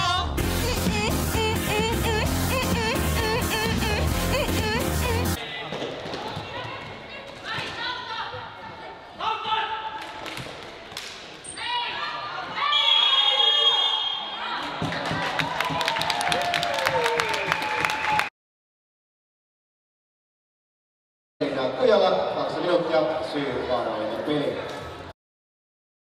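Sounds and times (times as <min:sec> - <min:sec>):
background music: 0:00.0 - 0:05.4.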